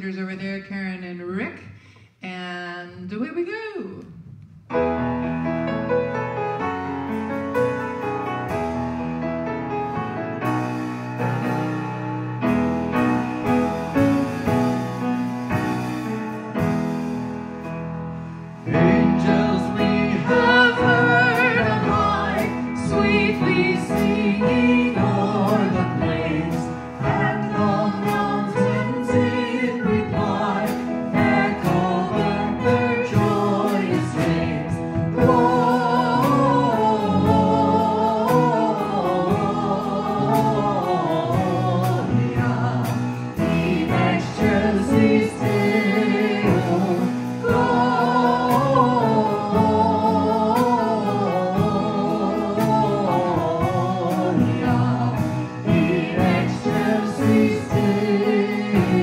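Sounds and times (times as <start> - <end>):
live band playing: 3.5 - 59.0
people singing a carol: 18.7 - 59.0.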